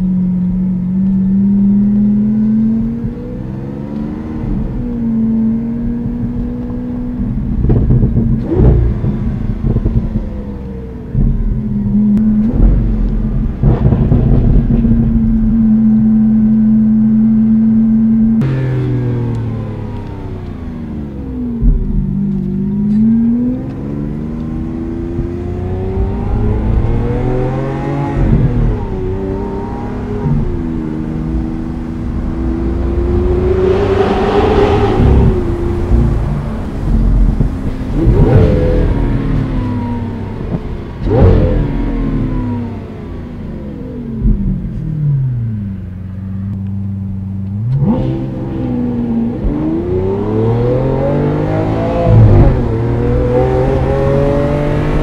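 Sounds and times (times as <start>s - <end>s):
car engine accelerating: 0.0s - 55.0s.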